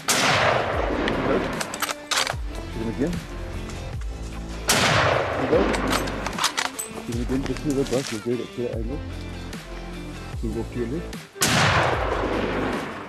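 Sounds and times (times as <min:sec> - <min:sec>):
rifle shots: 0:00.0 - 0:02.4, 0:04.7 - 0:06.7, 0:11.4 - 0:13.0
background music: 0:00.0 - 0:13.0.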